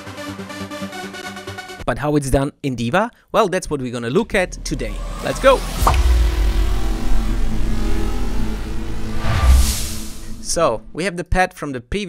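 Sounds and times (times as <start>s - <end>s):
deep bass rumble: 4.1s - 11.0s.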